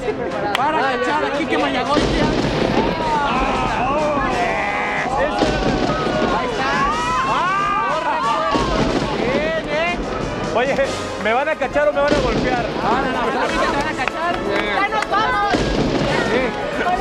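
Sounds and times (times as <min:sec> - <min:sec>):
music playing: 0:00.0 - 0:17.0
people shouting excitedly: 0:02.0 - 0:10.5.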